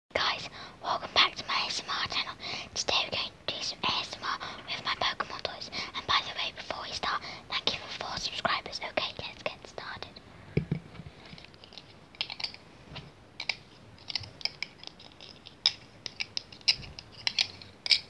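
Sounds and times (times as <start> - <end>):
person whispering: 0.1 - 10.2.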